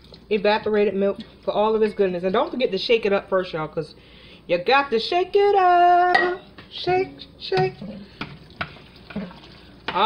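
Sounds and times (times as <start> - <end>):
soft stirring of mixture: 5.6 - 10.0.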